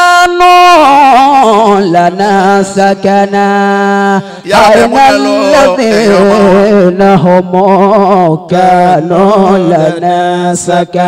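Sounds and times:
man chanting into microphone: 0.0 - 11.0.

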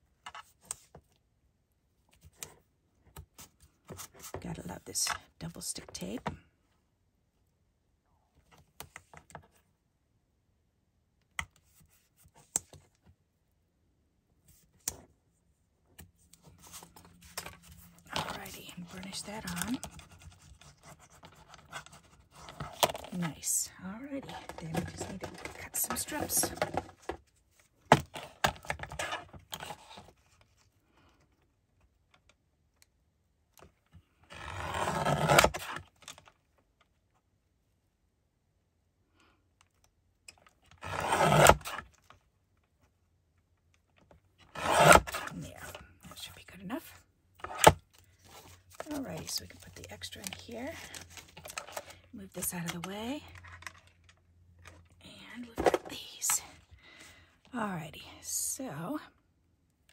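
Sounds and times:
paper rustling and scraping: 16.4 - 30.6, 47.4 - 52.0.

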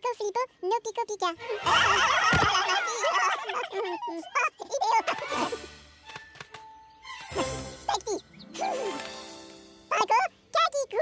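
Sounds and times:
cartoon voices wailing: 1.4 - 5.6.

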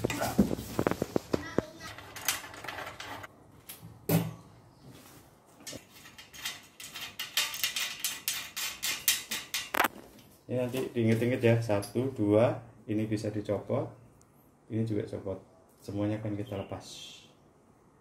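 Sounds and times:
metal and plastic parts clinking: 5.6 - 9.9.

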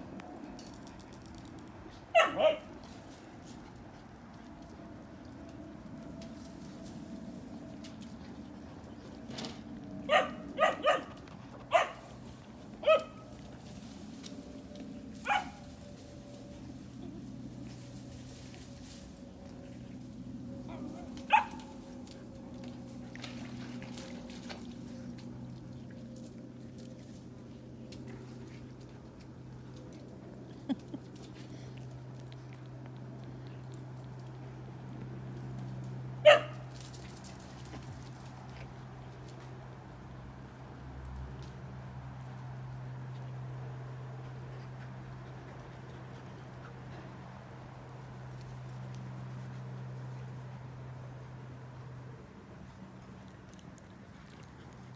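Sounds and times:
dogs barking: 2.1 - 2.7, 10.0 - 12.1, 12.8 - 13.3, 15.2 - 15.6, 20.6 - 21.8, 36.2 - 36.6.

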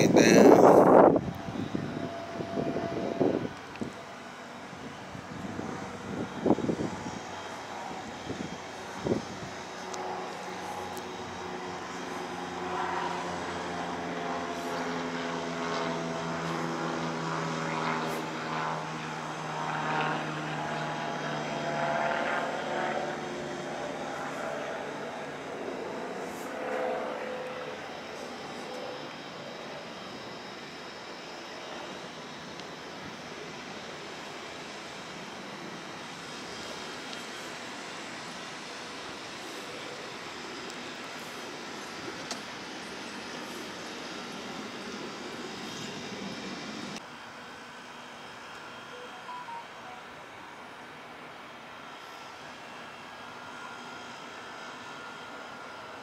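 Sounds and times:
low engine drone: 0.0 - 54.4.

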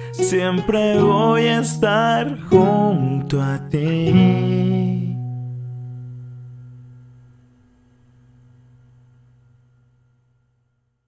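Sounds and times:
acoustic guitar chord ringing: 0.0 - 10.7.

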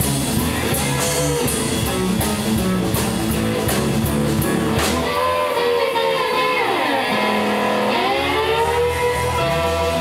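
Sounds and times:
blues-rock band playing: 0.0 - 10.0
guitar gliding in pitch: 4.5 - 10.0.

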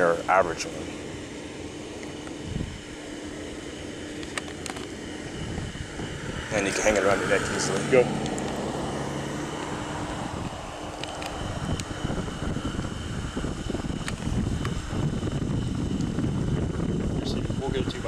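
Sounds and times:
vehicle engine running: 0.0 - 18.0
microphone handling noise: 2.0 - 2.8, 4.2 - 6.6, 7.7 - 17.7
wind rumble on microphone: 2.1 - 3.5, 4.4 - 18.0.

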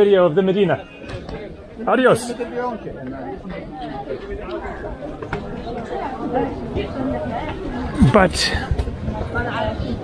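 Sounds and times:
chatter of many people: 0.0 - 10.0.

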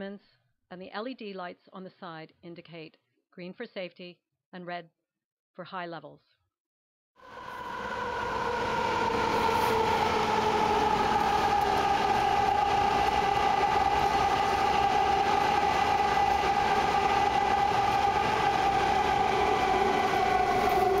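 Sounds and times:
high multi-tone train whine: 7.2 - 21.0
train track noise rushing: 7.2 - 21.0.

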